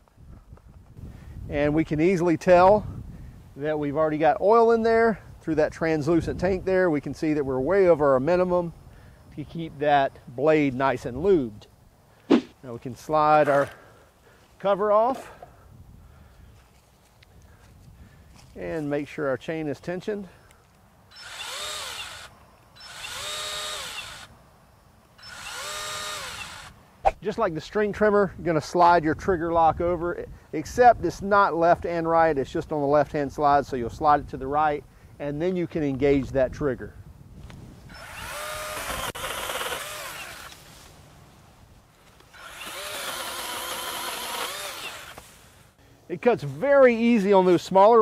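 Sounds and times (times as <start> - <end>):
pole saw motor whining: 21.1 - 24.3, 25.2 - 26.8, 37.9 - 40.6, 42.3 - 45.2.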